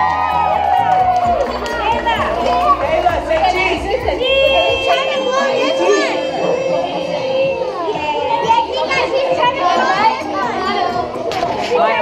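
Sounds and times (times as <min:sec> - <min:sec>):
children chattering and calling out: 0:01.4 - 0:12.0.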